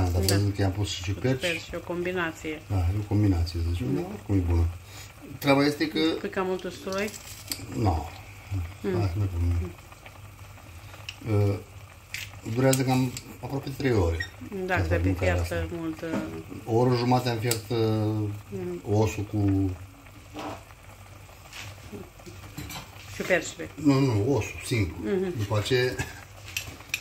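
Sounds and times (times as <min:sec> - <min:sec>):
person speaking: 0:00.0 - 0:09.8
soup boiling and bubbling: 0:00.0 - 0:27.0.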